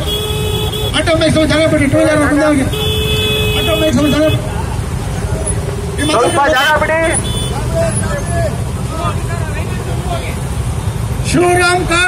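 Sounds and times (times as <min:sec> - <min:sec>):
motorcycles rumbling: 0:00.0 - 0:12.0.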